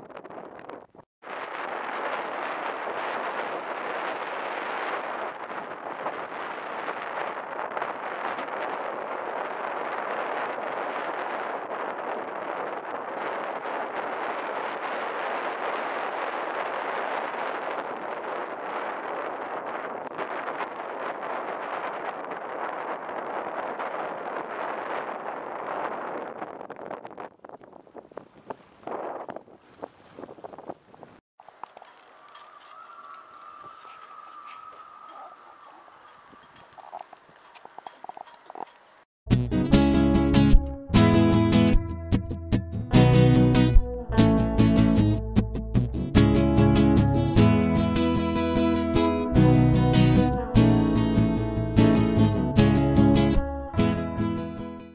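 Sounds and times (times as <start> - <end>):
wind noise on microphone: 0.0 - 54.9.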